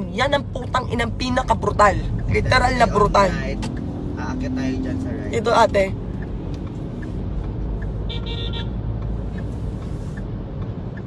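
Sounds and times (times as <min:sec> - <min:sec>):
road and engine rumble: 0:00.0 - 0:11.0
car horn toot: 0:08.0 - 0:08.8.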